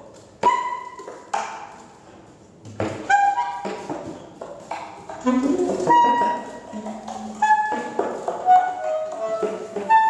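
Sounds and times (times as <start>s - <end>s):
saxophones improvising free jazz: 5.1s - 10.0s.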